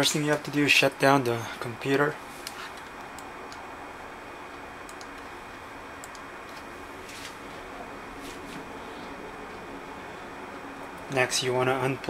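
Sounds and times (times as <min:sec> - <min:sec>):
low room hiss: 0:00.0 - 0:12.0
computer mouse clicks: 0:04.5 - 0:05.3, 0:06.0 - 0:06.6.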